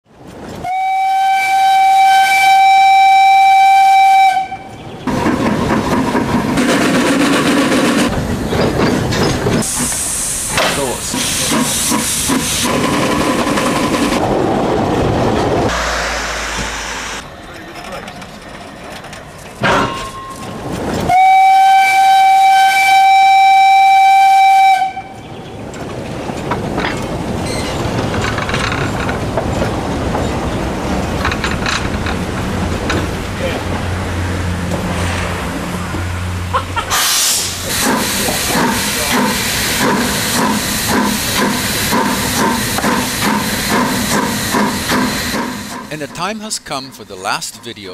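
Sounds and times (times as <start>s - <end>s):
train rolling: 0.1s - 47.9s
steam locomotive whistle: 0.6s - 4.8s, 21.1s - 25.2s
steam hissing: 9.6s - 14.2s, 15.7s - 17.3s, 36.9s - 45.9s.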